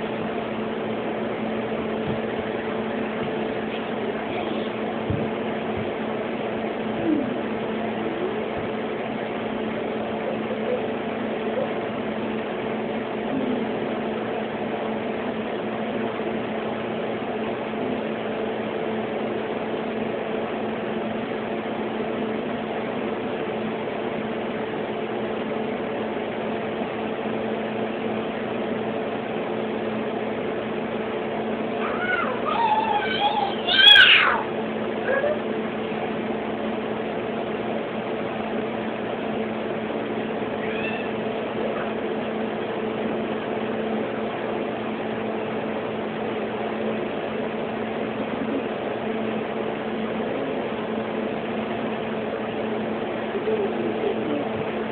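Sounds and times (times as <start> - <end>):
steady low hum: 0.0 - 54.9
cat meowing: 40.6 - 41.2.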